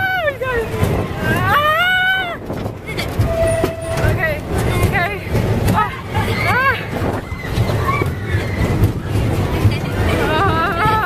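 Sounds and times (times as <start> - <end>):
ride rumbling: 0.0 - 11.0.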